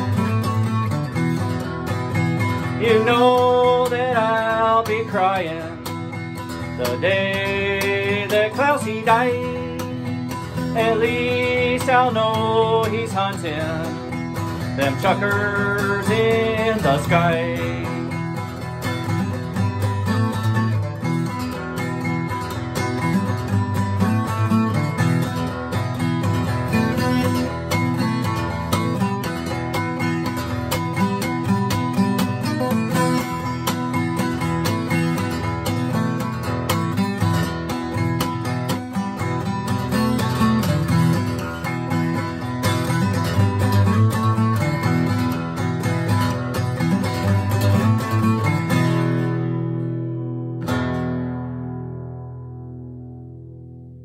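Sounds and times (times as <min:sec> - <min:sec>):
acoustic guitar strumming and plucking: 0:00.0 - 0:54.0.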